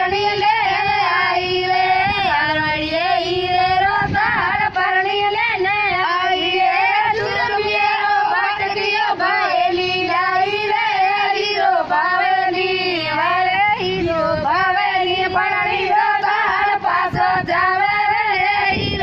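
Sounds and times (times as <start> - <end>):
high-pitched voices singing: 0.0 - 19.0.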